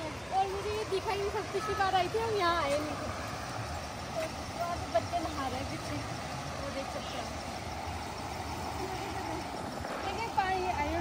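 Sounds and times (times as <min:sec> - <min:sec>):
water rushing over a weir: 0:00.0 - 0:11.0.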